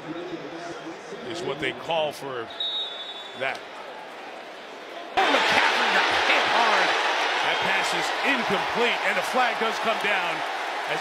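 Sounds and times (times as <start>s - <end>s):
murmur of stadium crowd: 0.0s - 11.0s
referee's whistle blast: 2.5s - 3.4s.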